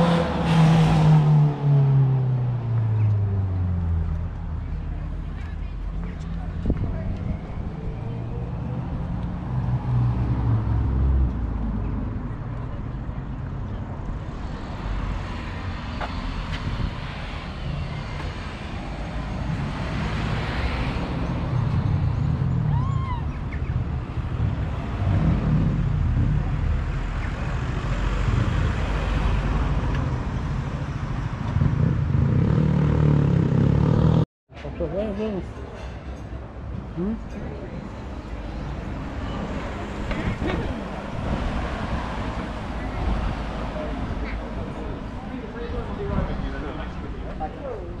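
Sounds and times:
cars driving past: 0.0 - 48.0
faint voices of passers-by: 2.0 - 33.7, 34.5 - 48.0.

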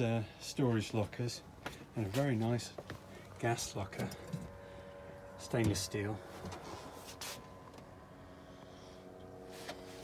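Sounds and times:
faint mechanical hum: 0.0 - 10.0.

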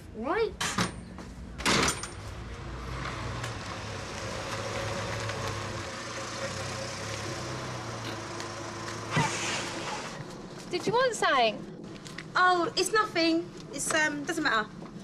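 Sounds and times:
outdoor background hum: 0.0 - 15.0.

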